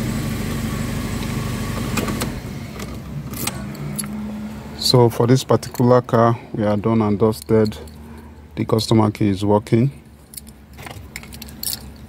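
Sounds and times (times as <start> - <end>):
car keys jingling: 5.5 - 6.2, 6.8 - 8.4, 10.0 - 12.0.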